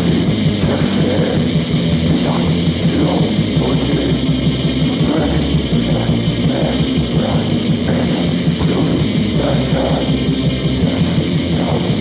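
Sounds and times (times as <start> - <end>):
heavy metal electric guitars: 0.0 - 12.0.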